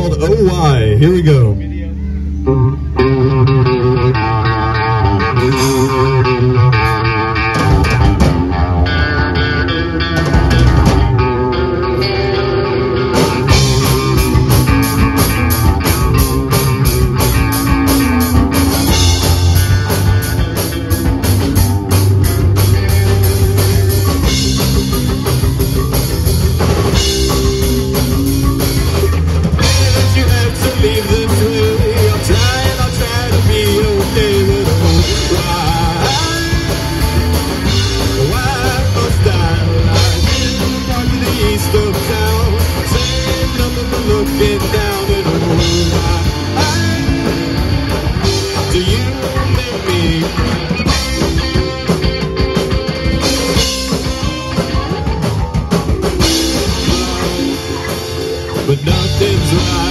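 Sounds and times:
electric guitar intro: 0.0 - 59.9
rock band playing: 0.0 - 59.9
drum kit with cymbals: 13.1 - 59.9.

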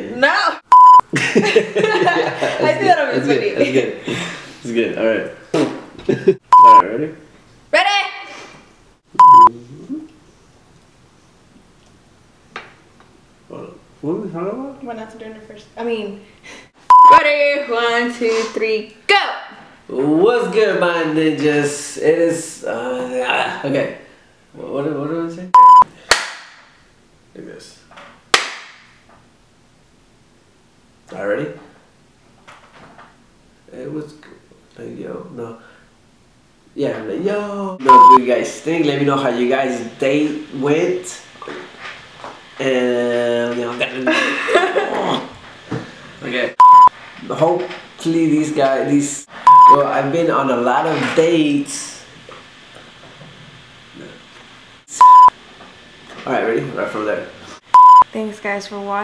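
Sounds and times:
censor bleep tone: 0.7 - 1.0, 6.5 - 6.8, 9.2 - 9.5, 16.9 - 17.2, 25.6 - 25.9, 37.8 - 38.2, 46.6 - 46.9, 49.5 - 49.8, 54.9 - 55.3, 57.8 - 58.1
sharp hand claps: 26.1 - 26.7, 28.3 - 28.9.

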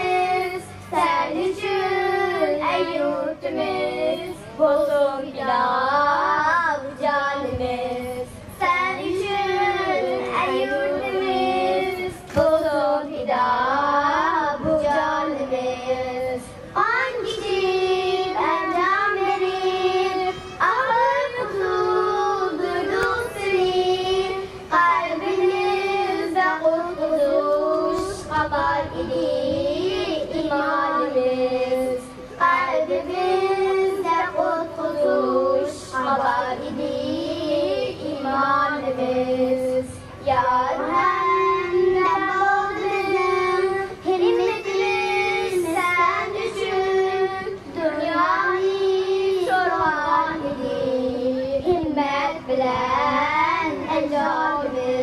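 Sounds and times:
girls singing slow song: 0.0 - 55.0.

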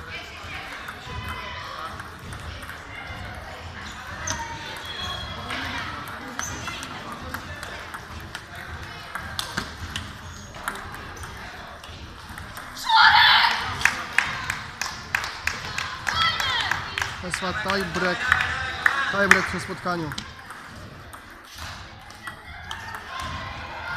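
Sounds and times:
table tennis balls clicking: 0.3 - 23.9.

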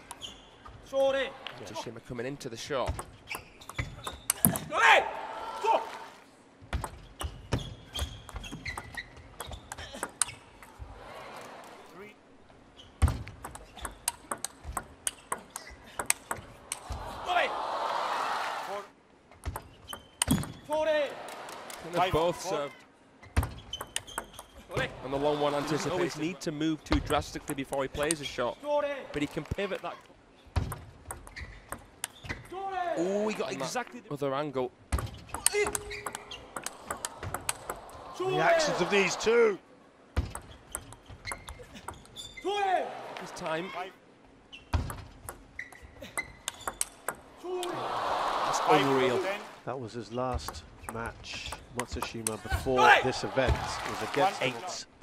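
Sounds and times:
table tennis ball clicks: 13.3 - 16.9, 35.0 - 37.9, 44.8 - 47.2.

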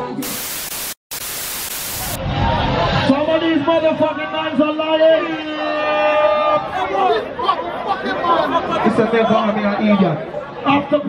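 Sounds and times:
television static hiss: 0.0 - 2.2.

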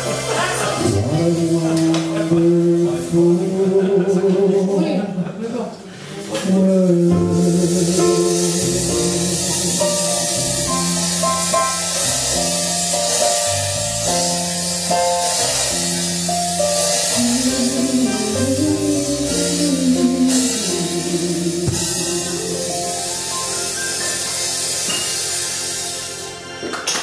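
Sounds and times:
drum kit with cymbals: 0.0 - 3.5, 5.9 - 27.0
guitar: 0.0 - 5.2, 6.0 - 27.0
bass: 0.0 - 26.8
harmonica melody: 6.7 - 26.6.

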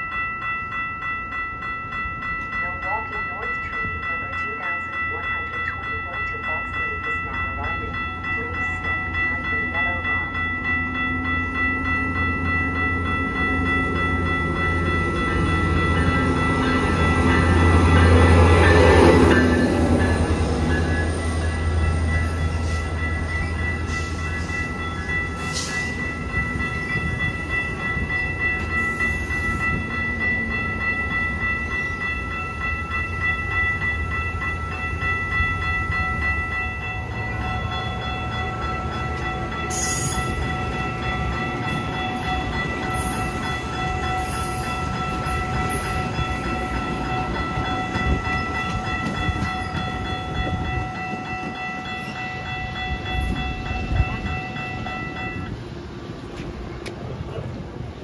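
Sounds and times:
steady high-pitched tones: 0.0 - 58.0
train rumbling past: 0.0 - 58.0.

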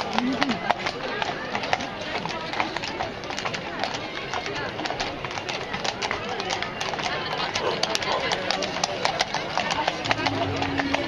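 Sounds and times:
crowd chatter: 0.0 - 11.0
horse hooves clip-clopping: 0.0 - 11.0.

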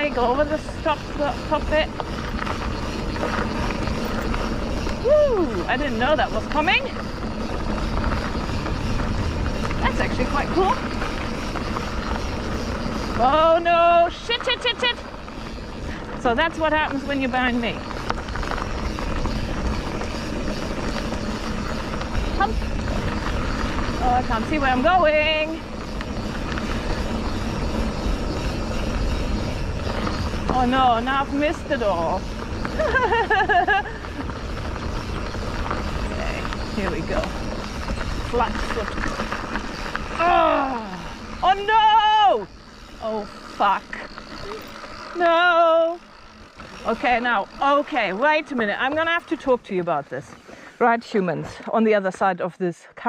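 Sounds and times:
wind buffeting microphone: 0.0 - 50.2
bike clatter: 0.0 - 52.3
tyres rumbling on dirt trail: 0.0 - 52.6.

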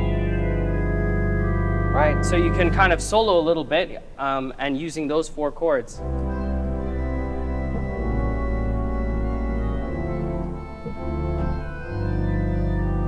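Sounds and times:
pipe organ jazz solo: 0.0 - 13.0.

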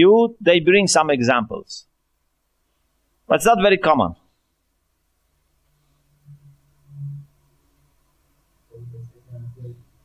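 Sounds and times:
muffled low voice humming: 8.7 - 10.0.

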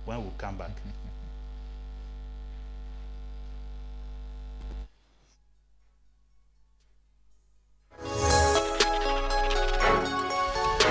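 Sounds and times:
electrical mains hum: 0.0 - 8.0.

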